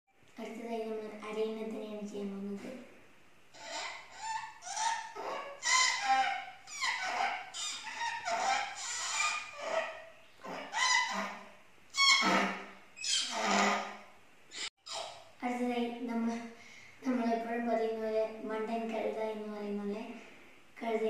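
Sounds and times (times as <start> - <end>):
boy imitating animal calls: 3.5 - 15.2.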